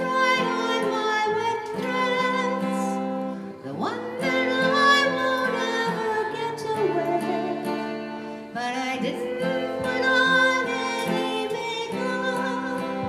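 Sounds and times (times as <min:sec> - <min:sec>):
acoustic guitar strumming: 0:00.0 - 0:13.0
woman singing: 0:00.0 - 0:13.0.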